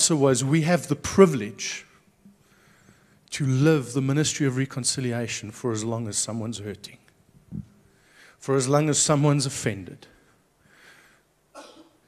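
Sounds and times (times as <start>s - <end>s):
faint breath: 2.4s - 3.3s, 7.9s - 8.4s, 10.1s - 11.4s
soft cough: 11.5s - 12.0s.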